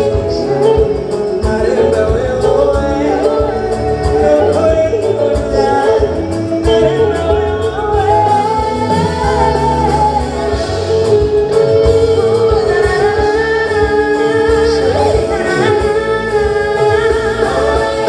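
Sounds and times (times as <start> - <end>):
live band playing: 0.0 - 18.0
woman singing into microphone: 0.0 - 18.0.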